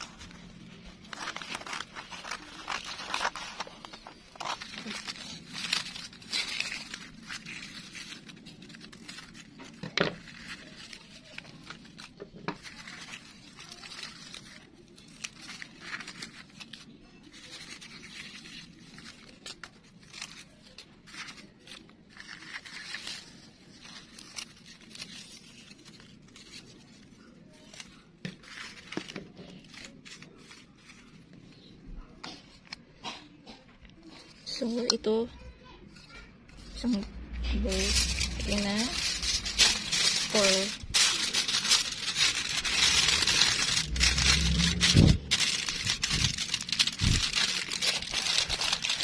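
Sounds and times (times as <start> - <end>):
scissors snipping newspaper: 0.0 - 31.2, 36.6 - 49.0
paper rustling and crinkling: 0.0 - 32.9, 33.9 - 49.0.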